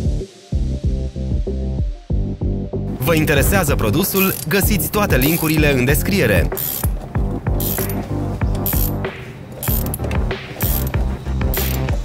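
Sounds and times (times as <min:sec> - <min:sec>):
background music with steady beat: 0:00.0 - 0:12.0
ratcheting spanner clicking: 0:04.0 - 0:05.6, 0:06.5 - 0:12.0.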